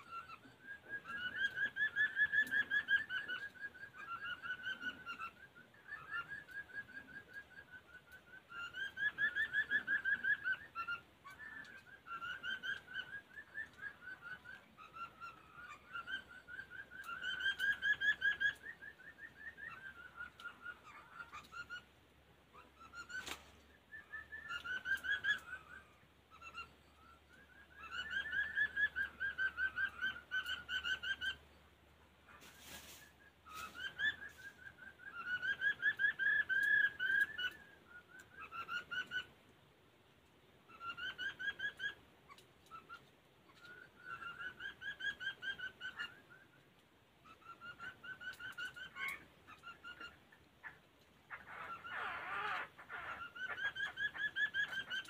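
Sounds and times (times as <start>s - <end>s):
bird singing warbled whistles: 0.0s - 21.7s, 22.8s - 31.4s, 32.9s - 39.3s
brief rustle: 32.4s - 34.6s.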